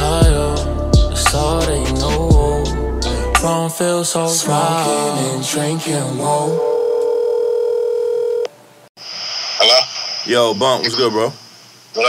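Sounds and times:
telephone tone: 6.6 - 8.5
phone line hiss and whine: 6.6 - 8.6, 9.4 - 11.4
man talking over phone: 9.6 - 11.4.

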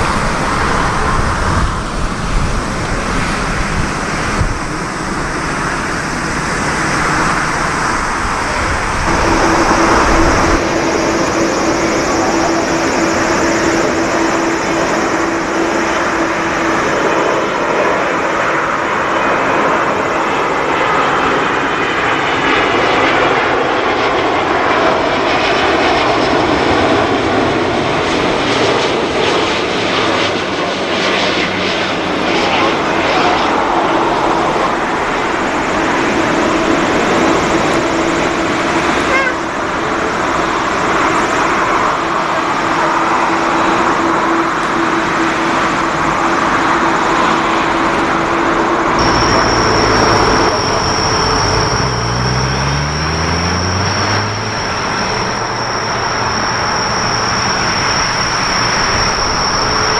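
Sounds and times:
jet engines roaring: 0.0 - 59.9
steady hum: 48.9 - 59.9.

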